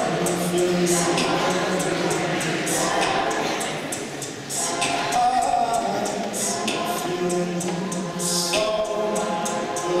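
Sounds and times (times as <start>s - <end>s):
a cappella group singing chords: 0.0s - 10.0s.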